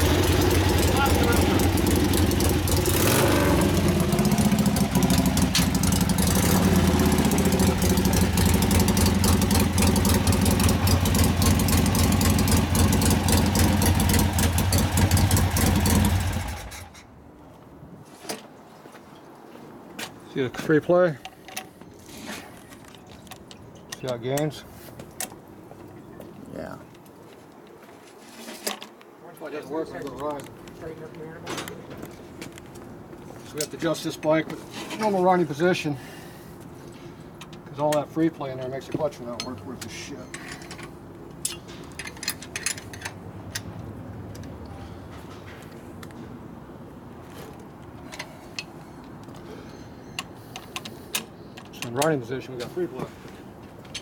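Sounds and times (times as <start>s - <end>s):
motorcycle engine idling: 0.0s - 16.9s.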